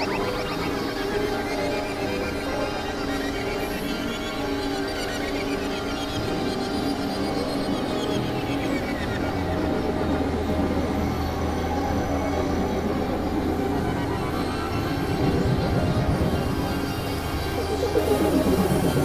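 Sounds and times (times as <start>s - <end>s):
experimental electronic music: 15.2s - 19.0s.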